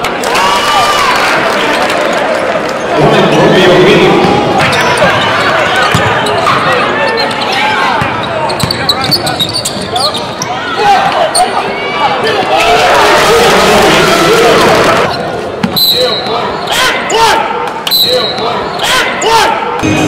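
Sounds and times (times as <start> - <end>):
sneakers squeaking: 4.2 - 12.2, 15.0 - 16.8, 17.7 - 19.2.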